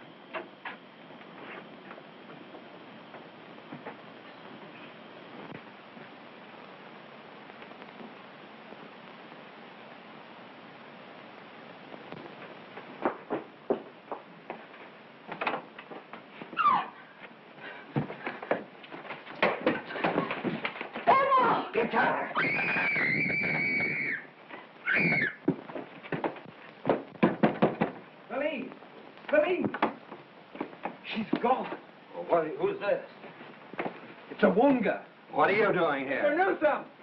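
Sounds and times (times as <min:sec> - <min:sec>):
knocks and thumps: 0:12.2 - 0:14.6, 0:17.9 - 0:21.1, 0:25.4 - 0:28.1, 0:29.6 - 0:31.5
short cries: 0:16.6 - 0:17.0, 0:22.4 - 0:25.4
woman screaming: 0:16.6 - 0:17.0, 0:21.1 - 0:21.7, 0:22.3 - 0:25.4.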